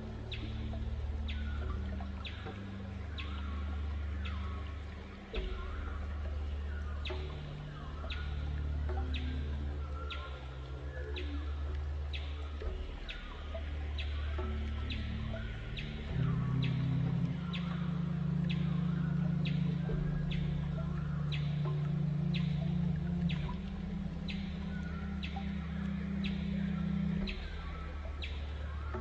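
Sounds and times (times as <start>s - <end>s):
calm meditation music: 0.0s - 29.0s.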